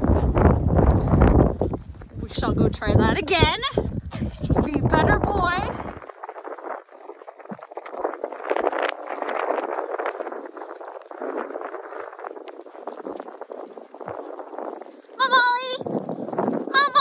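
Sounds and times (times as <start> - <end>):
horse hooves crunching snow: 0.0 - 17.0
footsteps crunching in snow: 5.8 - 17.0.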